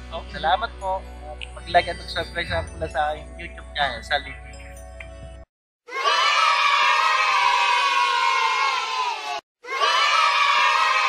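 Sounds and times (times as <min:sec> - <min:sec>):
children cheering and shouting: 0:05.9 - 0:11.0.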